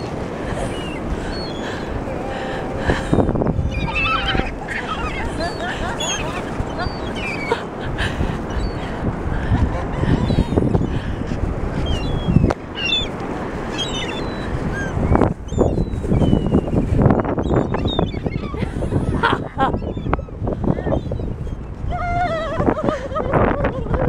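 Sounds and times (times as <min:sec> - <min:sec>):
gulls squawking: 0:00.0 - 0:21.4.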